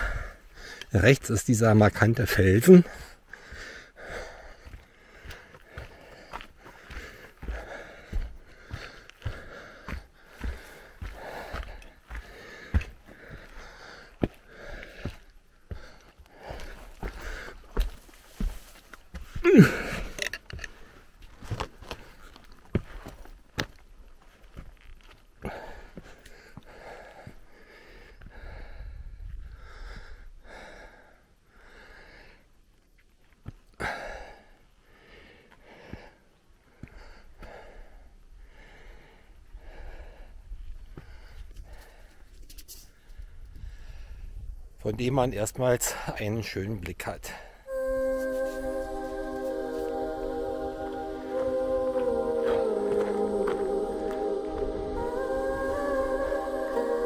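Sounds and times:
man breathing hard: 0:00.0 - 0:00.9, 0:02.8 - 0:21.2, 0:25.4 - 0:32.5, 0:33.8 - 0:42.3, 0:42.9 - 0:44.4
man gasping: 0:02.8 - 0:17.8, 0:19.1 - 0:21.0.

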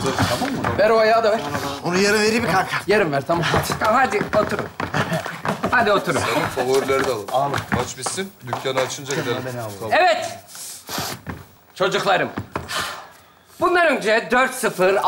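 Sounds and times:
people talking: 0:00.0 - 0:10.4.

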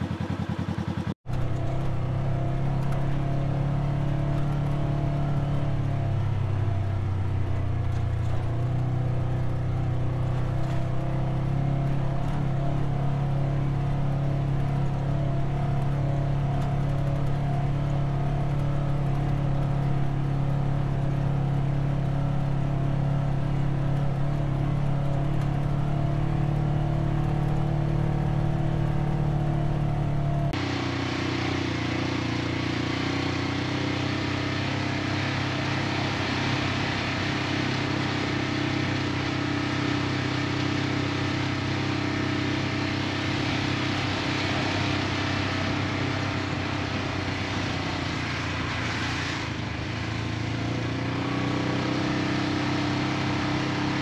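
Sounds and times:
vehicle engine droning: 0:00.0 - 0:54.0.

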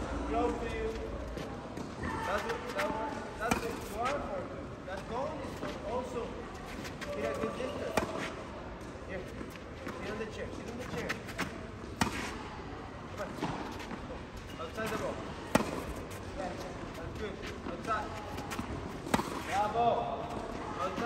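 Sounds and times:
tennis balls hit with rackets: 0:01.3 - 0:04.2, 0:06.9 - 0:12.4, 0:13.2 - 0:16.6, 0:17.6 - 0:21.0
tennis balls bouncing on clay: 0:14.7 - 0:21.0.

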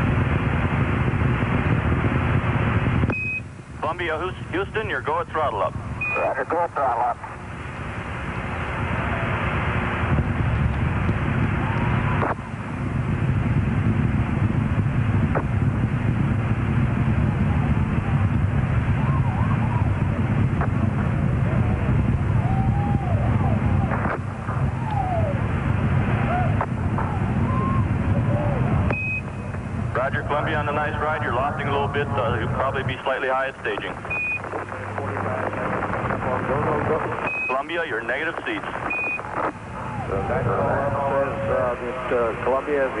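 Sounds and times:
rocket engines rumbling: 0:00.0 - 0:43.0
high radio beep: 0:03.1 - 0:03.5, 0:06.0 - 0:07.2, 0:28.9 - 0:35.6, 0:36.3 - 0:40.1.

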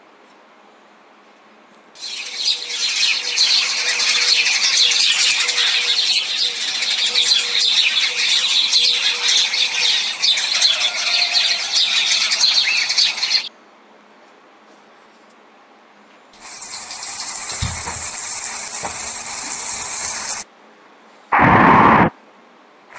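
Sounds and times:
birds chirping and twittering: 0:02.0 - 0:13.5, 0:16.4 - 0:20.4.

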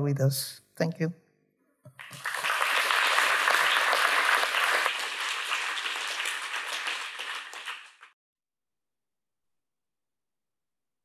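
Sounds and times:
audience applauding: 0:01.9 - 0:08.2.

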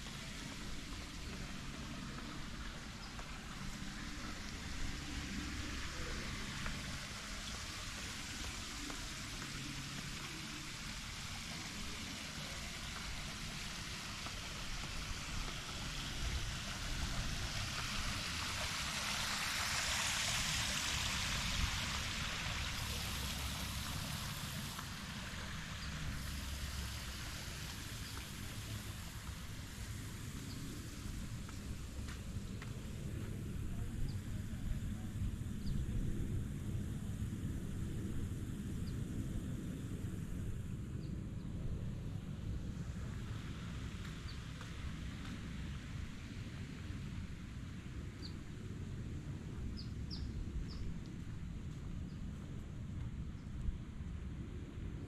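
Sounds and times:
fountain water splashing: 0:00.0 - 0:52.6
low uneven rumble: 0:00.0 - 0:55.0.

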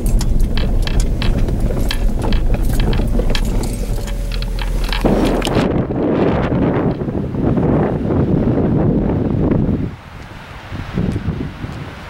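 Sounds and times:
gravel ticks and rattles: 0:00.0 - 0:07.1
engine and tyre rumble: 0:00.0 - 0:12.0.

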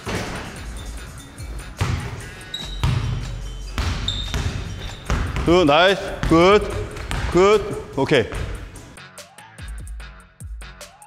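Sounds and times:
basketball bouncing on wood floor: 0:00.0 - 0:09.0.

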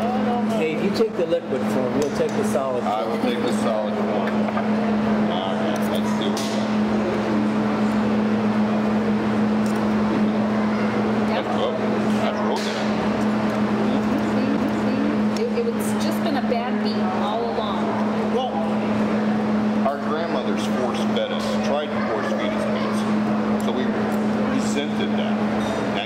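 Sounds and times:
indistinct conversation: 0:00.0 - 0:26.0
steady low hum: 0:00.0 - 0:26.0.

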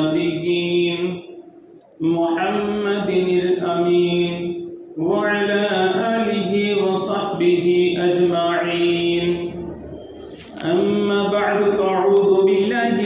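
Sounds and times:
man chanting: 0:00.0 - 0:01.4, 0:02.0 - 0:09.8, 0:10.5 - 0:13.0.

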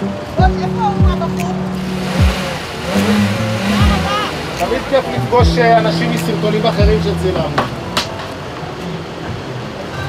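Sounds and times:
music with deep bass hits: 0:00.0 - 0:08.4
car engine starting and revving: 0:00.7 - 0:08.0.

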